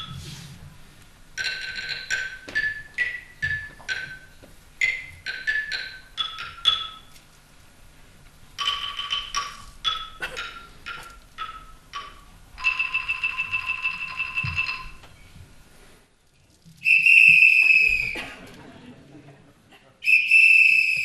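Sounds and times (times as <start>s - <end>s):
xylophone notes: 1.4s - 7.2s, 8.6s - 15.0s
loud steady whistle tone: 16.8s - 18.2s, 20.0s - 21.0s.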